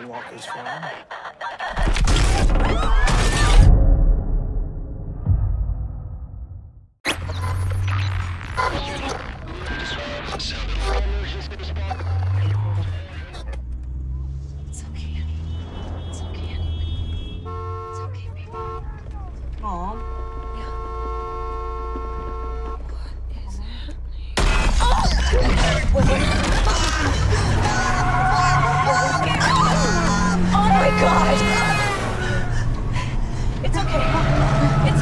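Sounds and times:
film soundtrack: 1.8s - 9.5s
car engine rumble: 10.2s - 35.0s.

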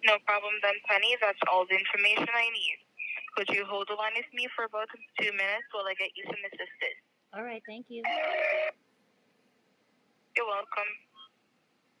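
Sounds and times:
electronic telephone tone: 8.0s - 8.8s.

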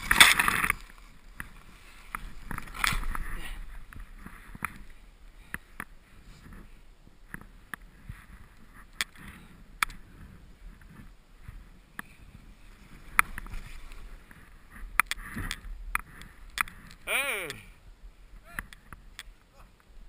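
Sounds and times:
skis sliding through powder snow: 0.0s - 15.4s.

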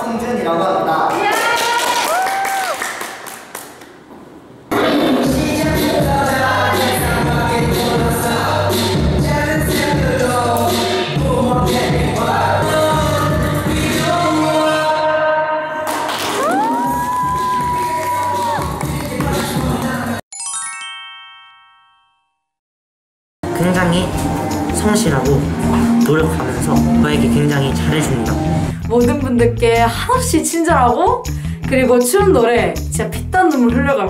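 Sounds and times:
crowd cheering: 1.1s - 4.0s, 15.9s - 20.0s
hand clapping: 1.2s - 4.0s, 15.9s - 20.2s.

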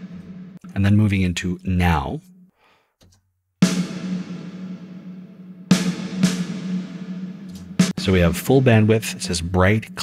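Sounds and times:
snare drum hits with long reverb: 3.6s - 8.2s.

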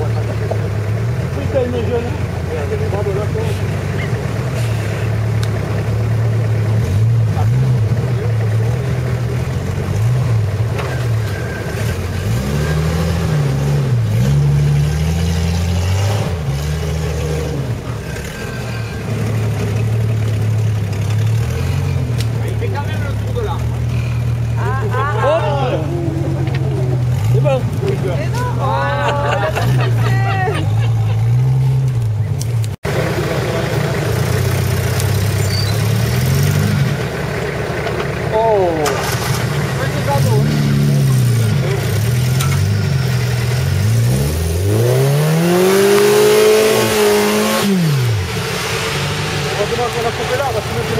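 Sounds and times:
off-road engines revving in mud: 0.0s - 50.9s
people shouting: 24.6s - 27.1s.

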